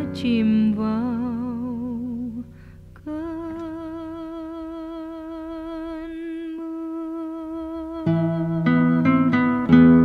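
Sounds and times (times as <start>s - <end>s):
person humming held notes: 0.0s - 9.2s
soft accompaniment: 0.0s - 10.0s.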